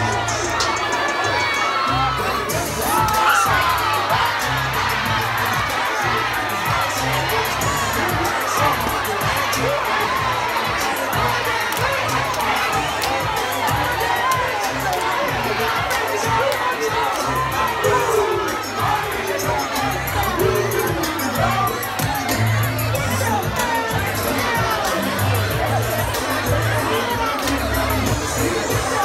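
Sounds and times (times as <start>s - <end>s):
bass of music track: 0.0s - 29.0s
crowd shouting and cheering: 0.0s - 29.0s.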